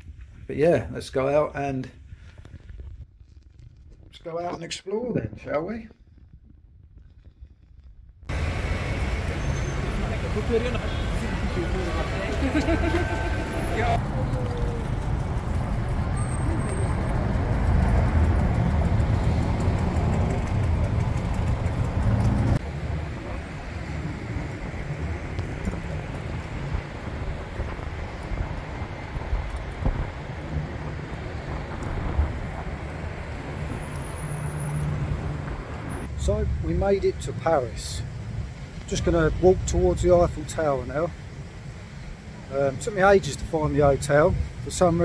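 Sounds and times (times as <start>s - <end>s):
road traffic rumble: 8.3s - 45.0s.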